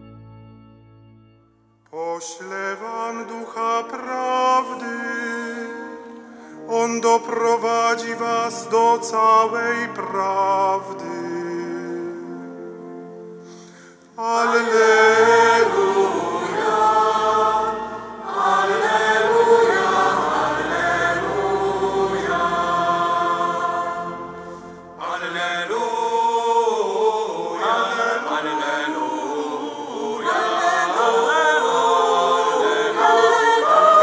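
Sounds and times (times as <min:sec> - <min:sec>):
choir singing chant: 0:14.2 - 0:34.0.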